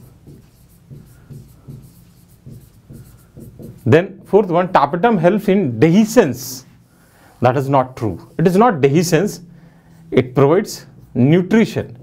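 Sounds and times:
marker writing on whiteboard: 0:00.0 - 0:04.3
man speaking: 0:03.8 - 0:06.7, 0:07.4 - 0:09.5, 0:10.1 - 0:12.0.

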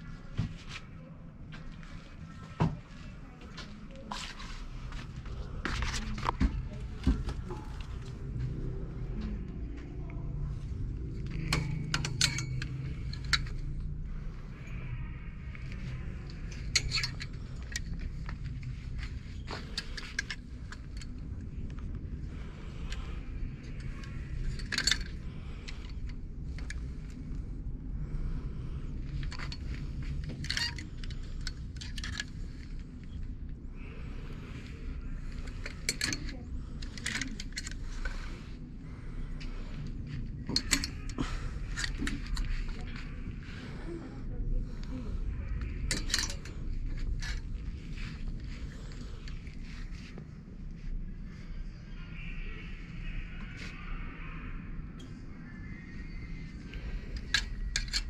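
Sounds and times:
low room rumble: 0:00.0 - 0:58.0
plastic hangers clacking on metal rail: 0:11.2 - 0:14.0, 0:23.7 - 0:27.2, 0:35.2 - 0:38.3, 0:40.4 - 0:42.8, 0:45.6 - 0:49.4.

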